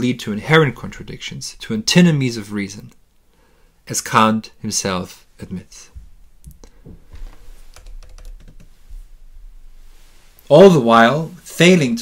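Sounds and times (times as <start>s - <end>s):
computer keyboard clicks: 7.7s - 8.7s.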